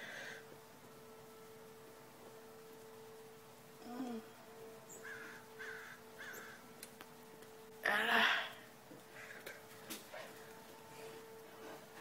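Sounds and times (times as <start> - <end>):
steady low hum: 0.0 - 12.0
faint bird calling: 3.8 - 6.8.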